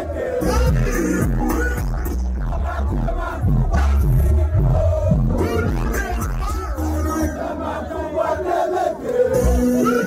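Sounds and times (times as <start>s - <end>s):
loud live music with bass: 0.0s - 7.4s, 9.3s - 10.0s
crowd shouting: 0.0s - 10.0s.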